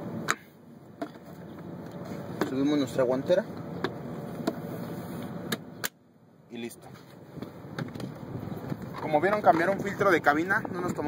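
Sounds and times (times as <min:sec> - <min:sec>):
wind on microphone: 0:09.7 - 0:11.0.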